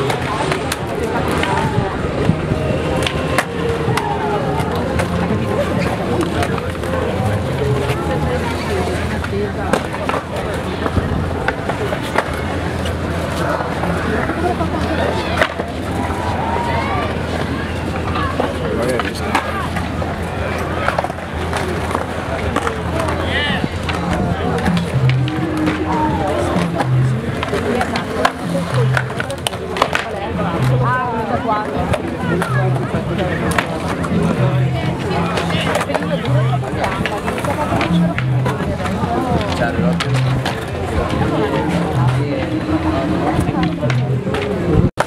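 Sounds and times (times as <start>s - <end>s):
crowd chatter: 0.0s - 45.0s
skateboard clacks: 0.0s - 45.0s
skateboards rolling on concrete: 0.0s - 45.0s.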